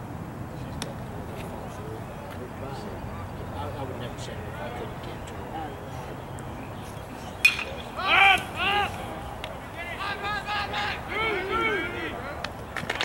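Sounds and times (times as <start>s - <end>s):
people shouting: 7.5s - 12.4s.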